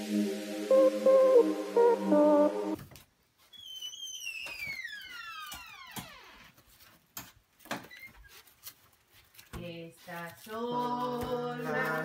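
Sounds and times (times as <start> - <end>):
high whistling tone falling: 0.0 - 2.8.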